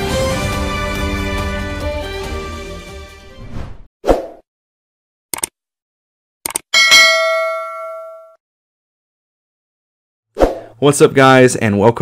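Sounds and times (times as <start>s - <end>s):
notification bell ding: 6.8s - 8.4s
man talking: 10.8s - 12.0s.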